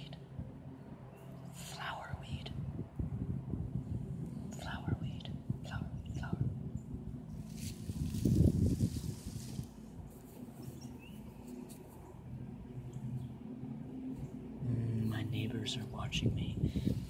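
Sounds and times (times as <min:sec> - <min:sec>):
wind rumbling on microphone: 0:01.7 - 0:17.0
fingers rustling grass: 0:07.3 - 0:12.2.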